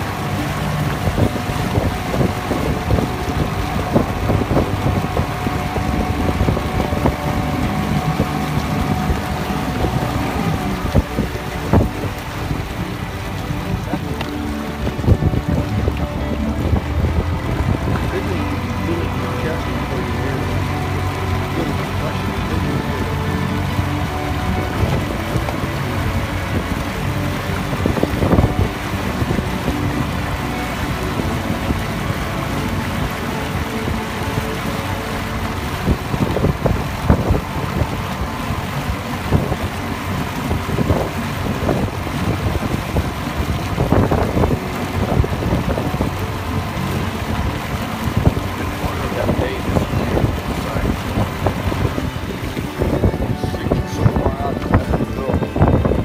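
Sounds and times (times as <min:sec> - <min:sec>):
hull knocking on waves: 0:00.0 - 0:56.0
outboard motor running: 0:00.0 - 0:56.0
wind buffeting microphone: 0:00.0 - 0:56.0.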